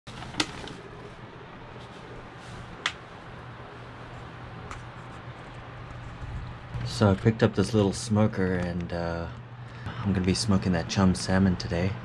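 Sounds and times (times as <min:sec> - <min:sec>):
electric fan humming: 0:00.1 - 0:12.0.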